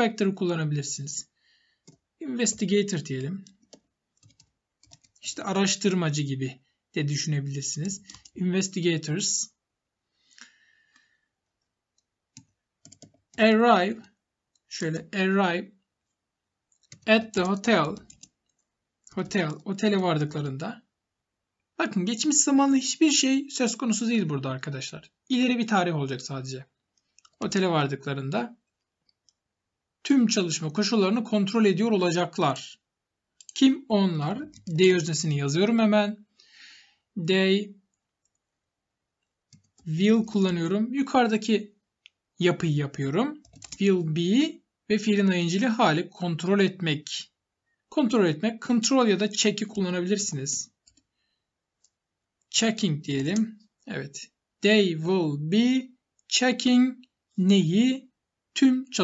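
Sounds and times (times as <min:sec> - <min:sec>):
man speaking: 0:00.0 - 0:01.4, 0:02.2 - 0:03.6, 0:05.2 - 0:09.6, 0:13.4 - 0:15.8, 0:17.0 - 0:18.1, 0:19.1 - 0:20.9, 0:21.8 - 0:26.8, 0:27.4 - 0:28.6, 0:30.0 - 0:32.9, 0:33.5 - 0:36.3, 0:37.2 - 0:37.8, 0:39.8 - 0:41.8, 0:42.4 - 0:50.8, 0:52.5 - 0:59.0.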